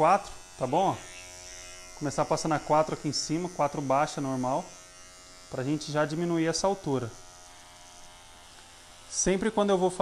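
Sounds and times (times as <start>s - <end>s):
electric hair clipper buzzing: 0.0s - 10.0s.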